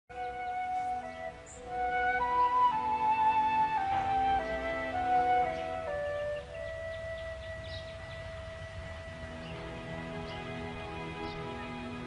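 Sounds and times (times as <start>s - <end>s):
soft flute music: 0.1s - 12.0s.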